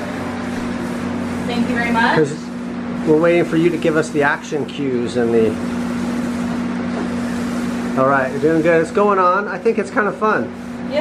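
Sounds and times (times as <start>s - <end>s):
paint roller hissing on wall: 0.0s - 11.0s.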